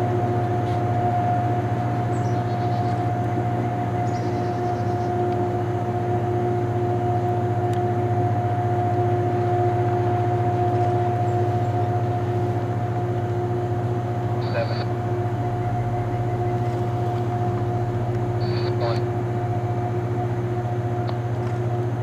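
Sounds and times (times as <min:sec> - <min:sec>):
constant high whine: 0:00.0 - 0:22.0
rail grinder train low drone: 0:00.0 - 0:22.0.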